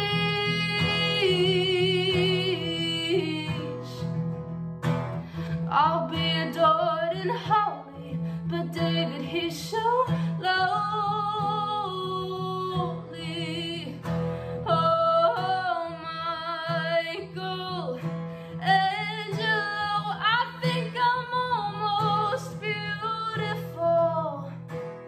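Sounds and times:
woman singing: 0:00.0 - 0:04.4, 0:05.4 - 0:24.8
acoustic guitar: 0:00.0 - 0:25.0.

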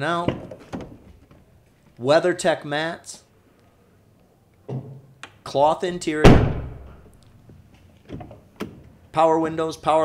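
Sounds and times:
car door thud: 0:06.2 - 0:07.1
soft shuffle: 0:07.3 - 0:08.1.

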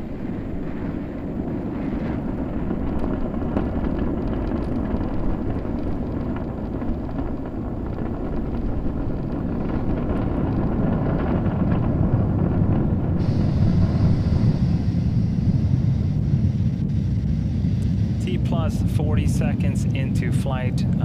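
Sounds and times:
rocket engines roaring: 0:00.0 - 0:21.0.

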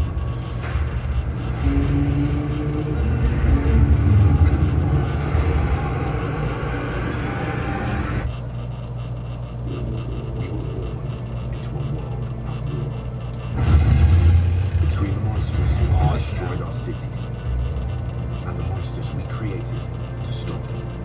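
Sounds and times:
dense rush of noise: 0:00.0 - 0:08.3, 0:13.4 - 0:19.6
low rumbling effects: 0:00.0 - 0:21.0
voices: 0:09.6 - 0:13.9, 0:14.5 - 0:21.0
deep boom: 0:13.5 - 0:16.4.

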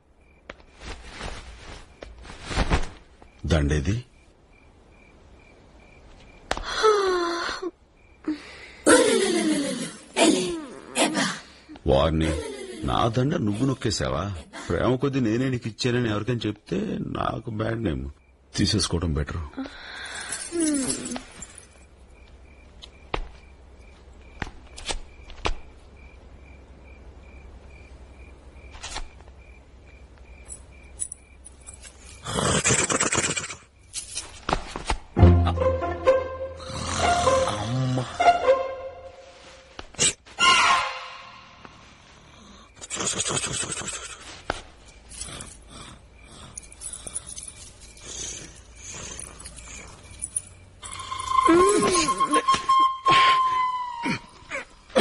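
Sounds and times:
crickets chirping: 0:00.0 - 0:55.0
steady high tone: 0:35.2 - 0:39.7.

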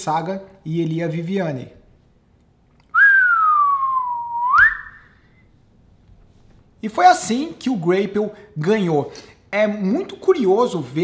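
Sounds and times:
sliding whistled note: 0:02.9 - 0:05.6.

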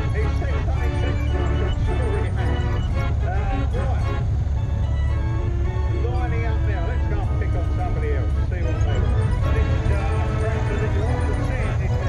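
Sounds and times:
person speaking: 0:00.0 - 0:04.2, 0:05.8 - 0:12.0
music: 0:00.0 - 0:12.0
tractor engines rumbling past: 0:00.0 - 0:12.0.

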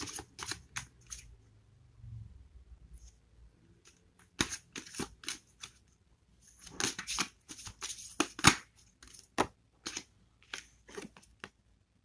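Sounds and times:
cards being shuffled: 0:00.0 - 0:01.3, 0:03.9 - 0:05.8, 0:06.6 - 0:11.6.

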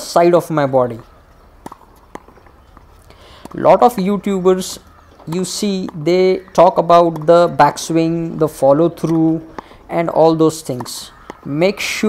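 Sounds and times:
tennis ball knocks: 0:01.6 - 0:12.0.

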